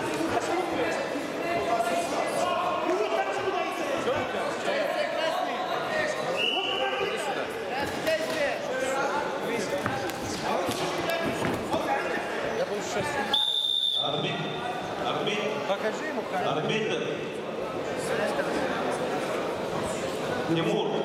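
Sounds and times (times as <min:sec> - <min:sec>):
short high whistle: 0:13.3 - 0:14.1
steady high whistle: 0:13.3 - 0:14.1.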